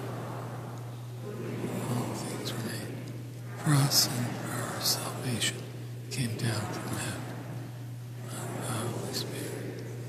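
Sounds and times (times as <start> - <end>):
steady low hum: 0.0 - 10.0
person reciting a prayer: 1.2 - 10.0.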